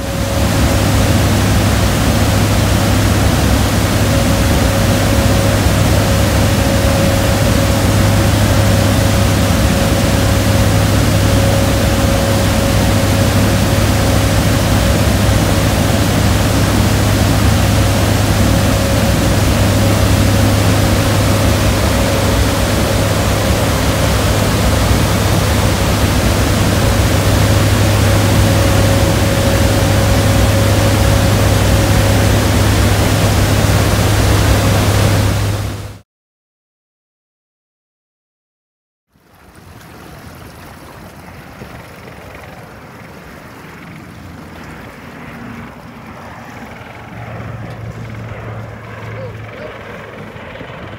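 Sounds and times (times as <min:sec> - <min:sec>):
faint high whine: 0:00.0 - 0:36.0
rushing air: 0:00.0 - 0:36.0
turboprop engines droning: 0:00.0 - 0:36.0, 0:39.4 - 0:50.9.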